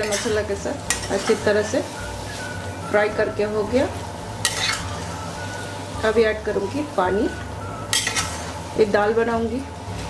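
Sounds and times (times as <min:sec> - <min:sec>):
metal spatula scraping a pan: 0:00.0 - 0:03.2, 0:04.4 - 0:06.0, 0:06.6 - 0:08.8
low steady hum: 0:00.0 - 0:10.0.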